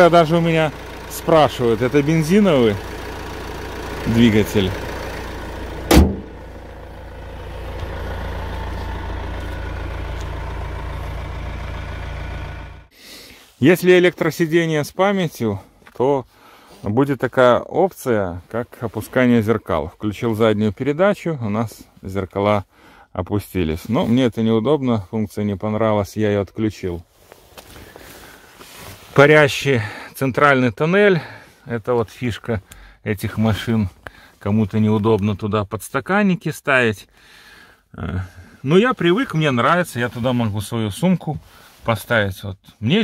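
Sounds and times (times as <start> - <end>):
diesel engine idling softly: 0.0 - 12.9
car bonnet thud: 5.9 - 6.4.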